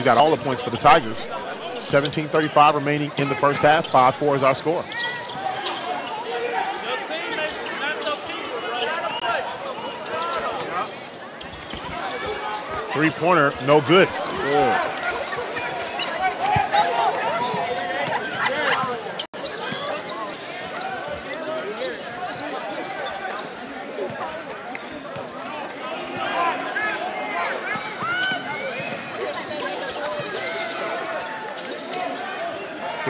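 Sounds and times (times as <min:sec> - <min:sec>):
voices of players and crowd: 0:00.0 - 0:33.0
sneakers squeaking: 0:00.1 - 0:32.4.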